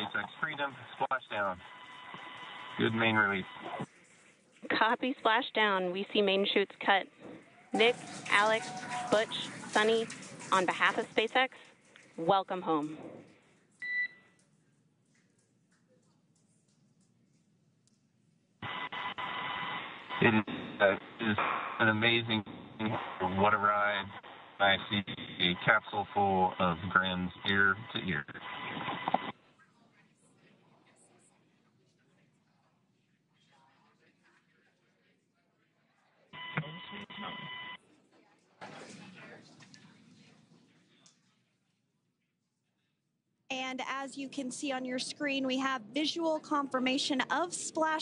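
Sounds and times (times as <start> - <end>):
radio hiss: 0.0 - 3.8, 18.6 - 29.3, 36.4 - 37.6.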